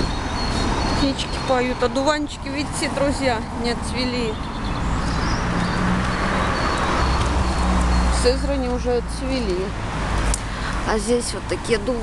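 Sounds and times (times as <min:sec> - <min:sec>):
street traffic rumble: 0:00.0 - 0:12.0
vehicle passing: 0:00.0 - 0:12.0.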